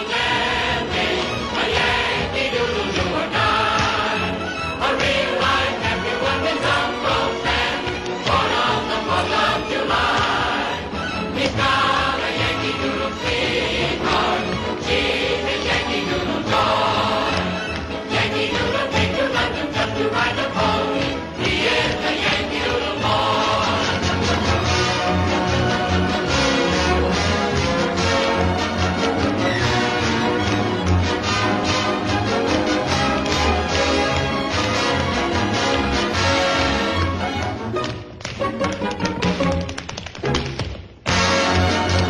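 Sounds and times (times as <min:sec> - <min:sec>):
chorus singing: 0:00.0 - 0:37.2
orchestra playing show tune: 0:00.0 - 0:42.0
soft music: 0:00.0 - 0:42.0
tap shoes on stage floor: 0:01.7 - 0:10.6, 0:11.3 - 0:22.8, 0:23.4 - 0:25.7, 0:29.0 - 0:31.9, 0:32.7 - 0:42.0.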